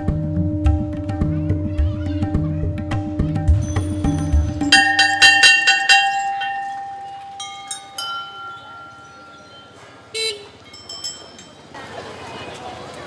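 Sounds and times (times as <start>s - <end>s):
small bells struck: 3.5s - 11.8s
large temple bell ringing: 3.6s - 11.8s.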